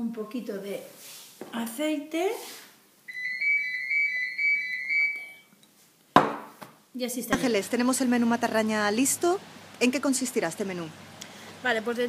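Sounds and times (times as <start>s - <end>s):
high-pitched whistling tone: 3.1s - 5.5s.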